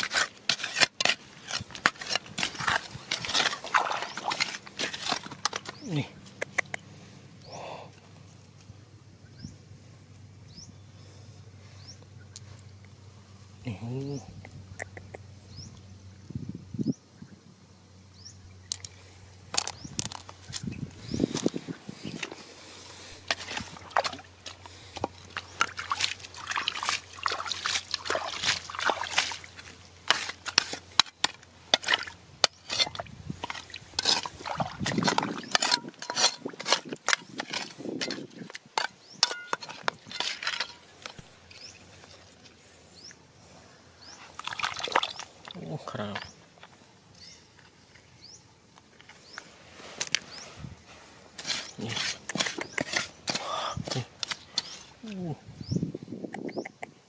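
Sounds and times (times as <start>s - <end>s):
digging in wet mud: 0.0s - 7.8s, 18.8s - 43.2s, 44.0s - 46.7s, 49.2s - 55.4s.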